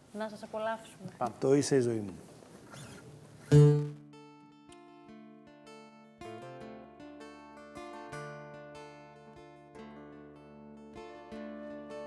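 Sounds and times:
plucked string ensemble: 3.5s - 5.0s.

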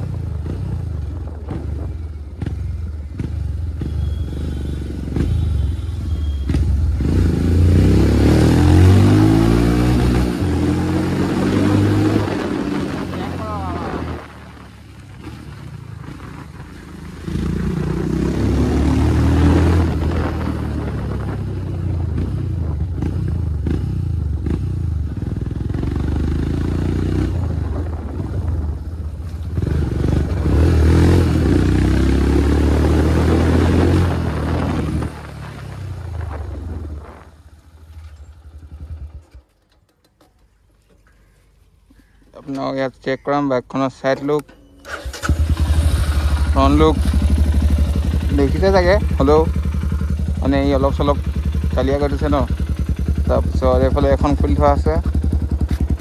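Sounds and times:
motorcycle engine revving: 0.0s - 39.8s, 44.0s - 56.0s.

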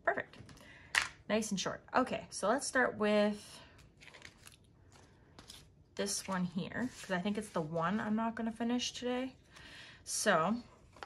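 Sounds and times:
plastic rustling and crinkling: 3.8s - 8.1s.

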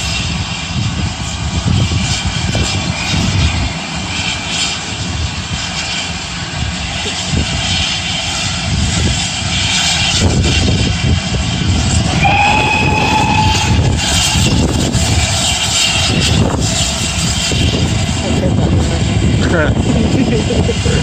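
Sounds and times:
steam engine low rumble: 0.0s - 21.0s
steam whistle: 11.8s - 15.9s.

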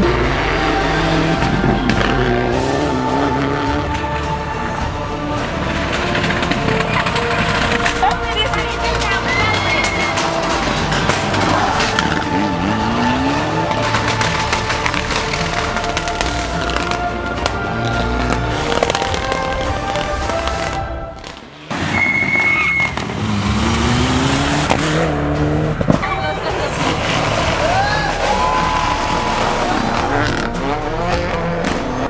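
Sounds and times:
rally car engines revving: 0.0s - 32.0s.

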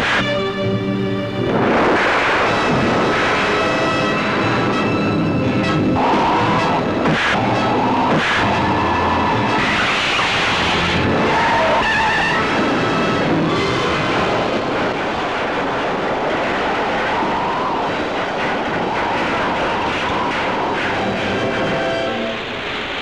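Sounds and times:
vehicle engine running hard: 0.0s - 16.9s
tyres skidding: 0.0s - 23.0s.

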